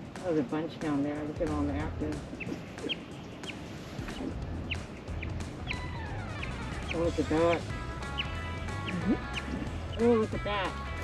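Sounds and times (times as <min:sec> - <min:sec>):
low steady hum: 0:00.0 - 0:11.0
bird chirping: 0:01.8 - 0:11.0.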